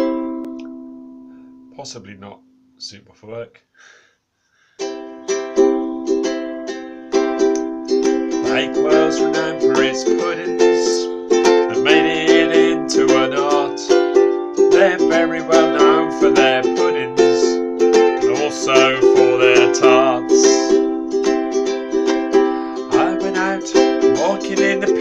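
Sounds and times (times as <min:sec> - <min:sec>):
ukulele strumming chords: 0:00.0 - 0:02.6, 0:04.8 - 0:25.0
man singing: 0:08.1 - 0:21.0, 0:22.4 - 0:25.0.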